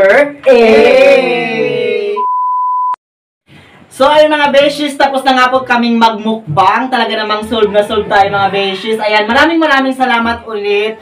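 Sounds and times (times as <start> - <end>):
high-pitched test-tone beep: 2.2 - 3.0.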